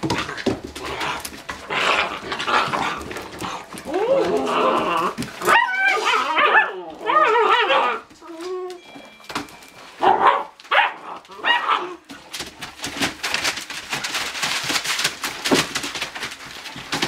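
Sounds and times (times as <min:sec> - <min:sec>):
puppies scuffling: 0:00.0 - 0:17.0
puppies whining and yelping: 0:03.5 - 0:10.4.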